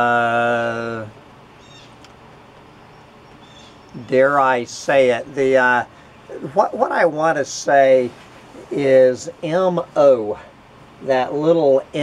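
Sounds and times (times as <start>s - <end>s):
steady low hiss: 0.0s - 12.0s
small click: 2.0s - 2.7s.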